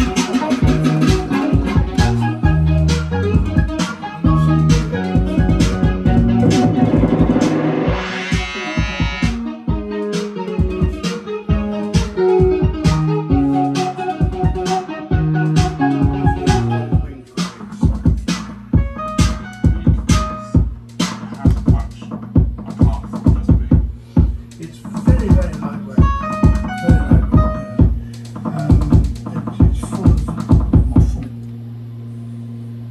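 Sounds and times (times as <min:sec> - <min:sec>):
synth bass line: 0:00.0 - 0:17.3, 0:25.1 - 0:32.0
held synth notes: 0:00.0 - 0:17.4, 0:25.3 - 0:29.3
bright synth sweep: 0:00.0 - 0:17.5
drum machine beat: 0:00.0 - 0:31.4.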